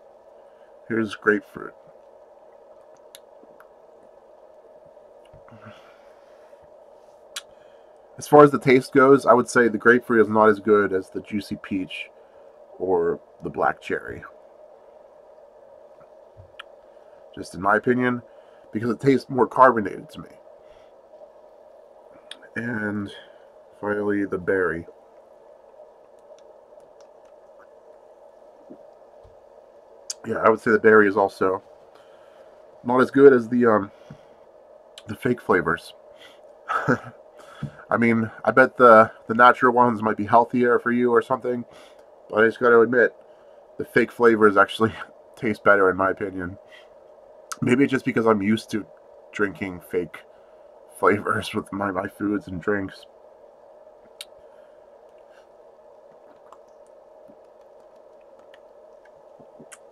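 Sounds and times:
steady low hum: 0.0s - 59.9s
faint small clicks: 25.2s - 28.0s, 56.1s - 59.9s.

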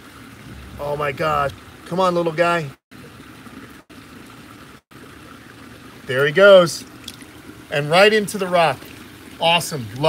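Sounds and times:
water trickling over rocks: 0.0s - 10.0s.

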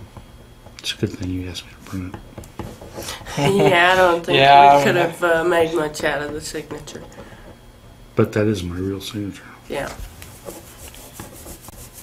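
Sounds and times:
pen scratching on paper: 10.3s - 12.0s.

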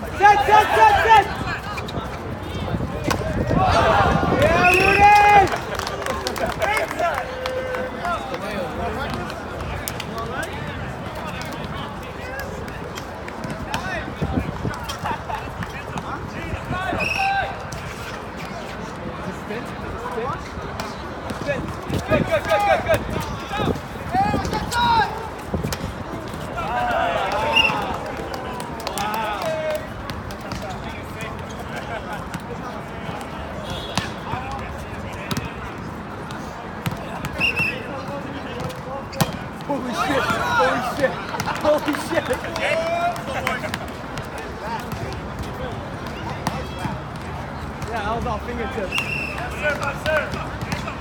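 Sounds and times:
people shouting: 0.0s - 1.4s, 3.4s - 5.6s, 26.5s - 29.8s, 39.7s - 41.1s.

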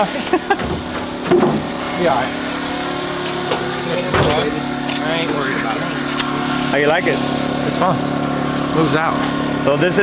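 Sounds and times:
man laughing: 0.0s - 0.8s
steady low hum: 0.0s - 10.0s.

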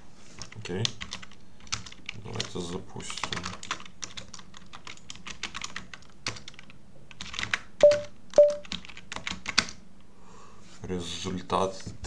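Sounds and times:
keyboard typing: 3.2s - 9.8s.

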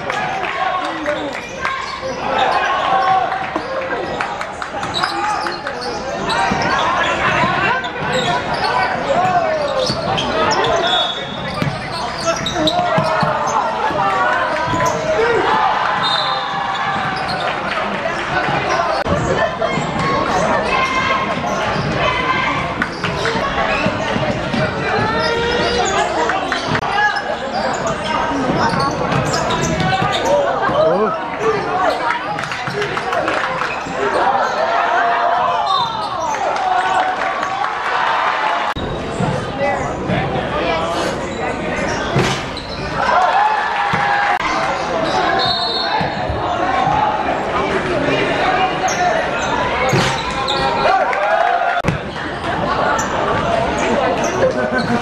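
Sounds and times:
sneakers squeaking: 0.8s - 37.7s, 38.8s - 47.5s, 48.2s - 51.1s, 51.8s - 55.0s
basketball bouncing on court: 11.4s - 14.0s.

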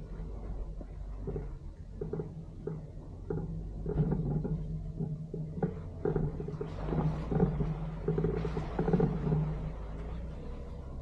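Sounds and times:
body knocks and rattles: 0.0s - 11.0s
car engine droning: 0.0s - 11.0s.

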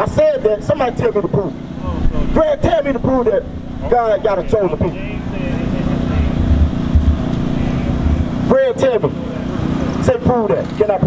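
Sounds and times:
faint voices: 0.0s - 11.0s
low engine rumble: 0.0s - 11.0s.

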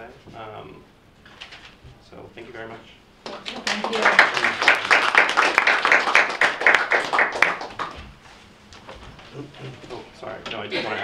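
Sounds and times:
nearby hands clapping: 3.2s - 8.0s
audience clapping: 3.2s - 8.1s.

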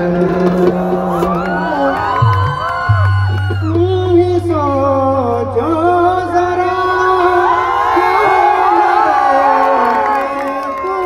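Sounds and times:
man singing into a microphone: 0.0s - 2.6s, 3.4s - 11.0s
audience noise: 0.0s - 4.6s, 7.0s - 11.0s.

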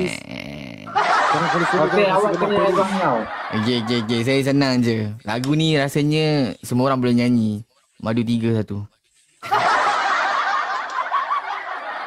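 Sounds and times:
young men laughing: 0.8s - 4.6s, 9.4s - 12.0s.

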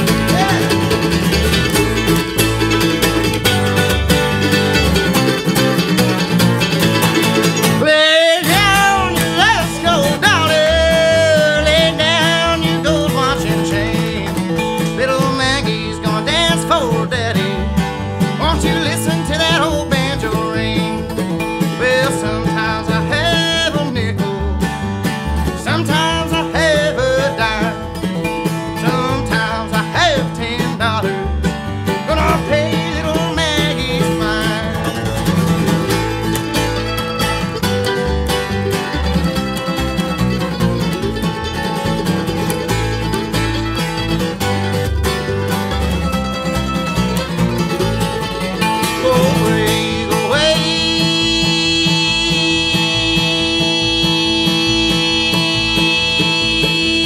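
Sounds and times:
man singing: 0.0s - 1.1s, 7.4s - 24.5s, 25.4s - 35.7s, 48.6s - 57.0s
acoustic guitar: 0.0s - 57.0s
mandolin: 0.0s - 57.0s
upright bass: 0.0s - 57.0s.

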